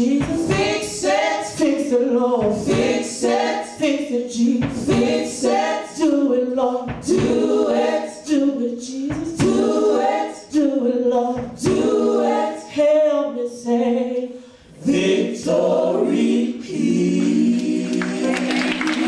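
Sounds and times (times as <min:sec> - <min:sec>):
gospel group singing in harmony: 0:00.0 - 0:19.0
sharp beat: 0:00.2 - 0:01.8, 0:02.4 - 0:03.5, 0:04.5 - 0:06.2, 0:06.8 - 0:07.9, 0:09.1 - 0:10.0, 0:11.4 - 0:12.0.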